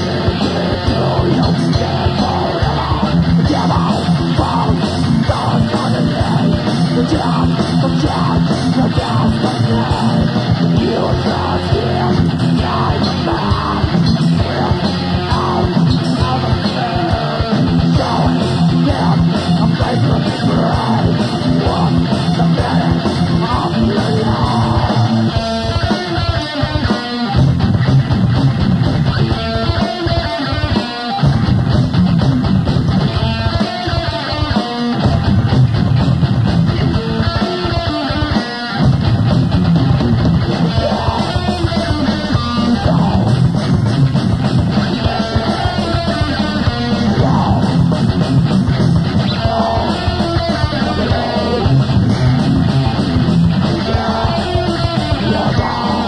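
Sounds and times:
distorted electric guitar: 0.0 - 56.0
drum kit: 0.0 - 56.0.

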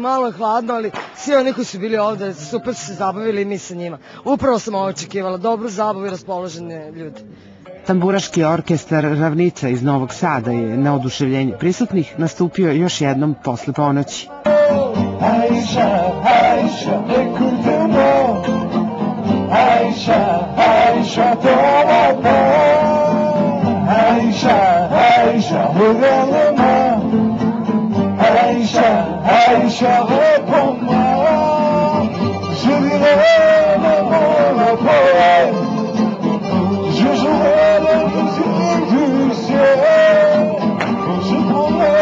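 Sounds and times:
man singing: 14.2 - 27.3, 28.2 - 42.0
plucked string ensemble: 14.4 - 42.0
double bass: 14.6 - 42.0.

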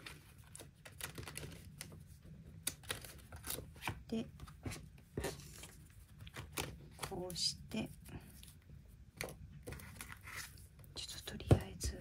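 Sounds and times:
paper rustling: 0.0 - 7.3, 9.2 - 10.7.

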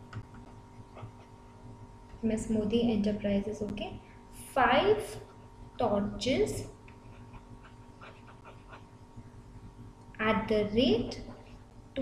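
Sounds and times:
steady background hum: 0.0 - 12.0
pen scratching while writing: 0.9 - 1.5, 6.9 - 8.9.

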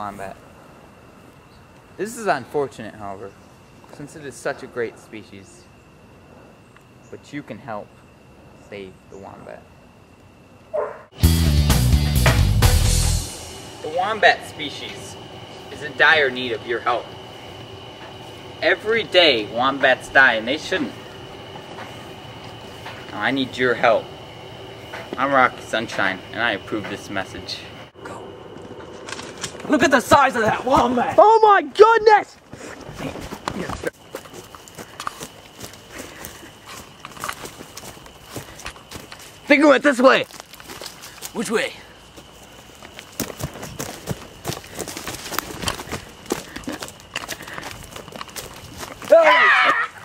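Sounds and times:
background hiss: 0.0 - 50.0
high-pitched whine: 11.2 - 31.7
running footsteps on ground: 28.5 - 31.4, 32.2 - 50.0.

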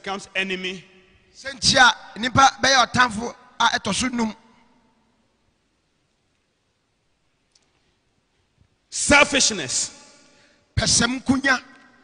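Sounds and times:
man speaking: 0.0 - 4.6, 8.9 - 12.0
faint click: 7.5 - 8.0.

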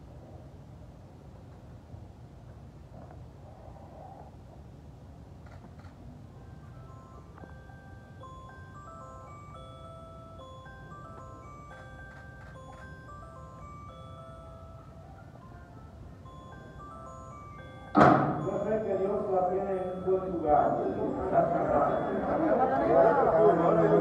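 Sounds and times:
low hum of a large hall: 0.0 - 24.0
slow instrumental melody: 6.3 - 24.0.

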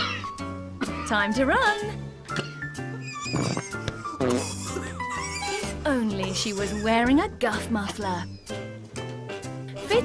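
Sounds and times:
background music: 0.0 - 10.0
comedy fart sound effect: 3.1 - 5.6.

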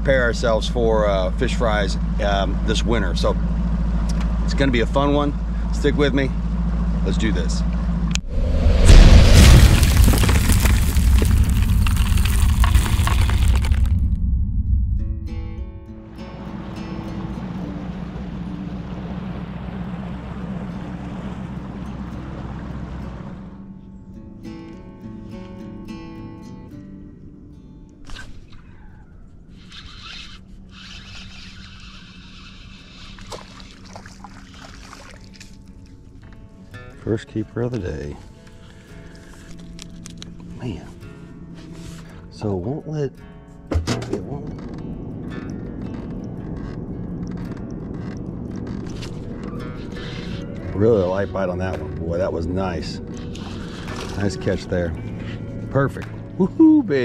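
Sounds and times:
background music: 14.8 - 20.1, 35.3 - 57.0
boat rushing across water: 16.3 - 23.6, 30.4 - 36.2, 44.3 - 57.0.

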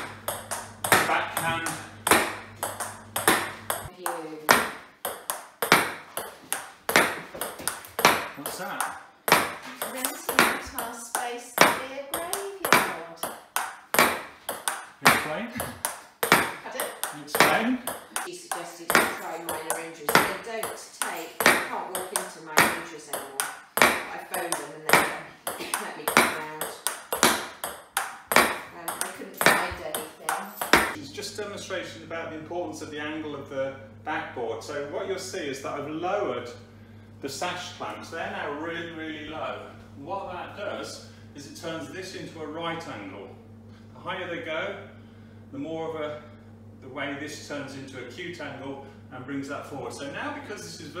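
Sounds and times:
ball bouncing on table: 0.0 - 31.0
ball pinging off board: 0.0 - 31.0
table tennis ball clicking: 0.2 - 3.9.

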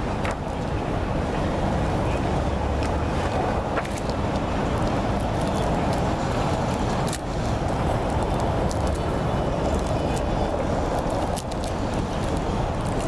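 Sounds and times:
rumble of passing cars: 0.0 - 13.0.

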